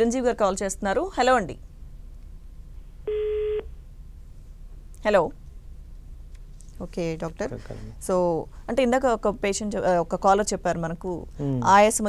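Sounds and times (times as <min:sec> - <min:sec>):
faint low hum: 0:00.0 - 0:12.0
telephone line beep: 0:03.1 - 0:03.7.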